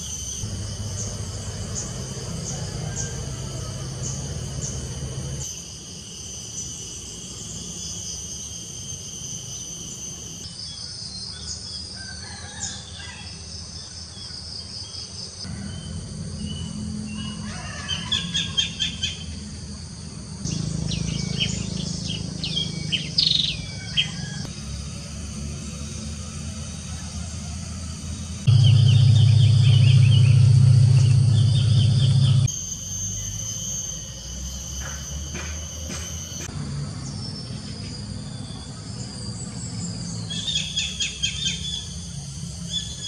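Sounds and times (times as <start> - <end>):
high insect drone: 0.0 - 43.0
whistled bird calls: 15.6 - 19.4, 20.5 - 24.5, 28.5 - 42.0
birds calling: 20.4 - 24.5, 28.5 - 32.5.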